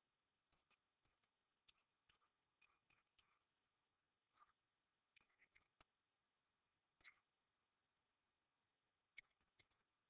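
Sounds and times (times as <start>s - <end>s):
stylus tapping and scratching: 0.5s - 3.6s, 4.2s - 6.0s, 7.0s - 7.3s, 9.1s - 10.0s.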